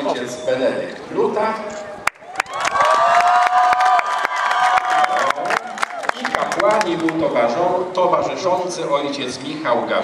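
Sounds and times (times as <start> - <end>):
crowd clapping and cheering: 2.0 - 7.2.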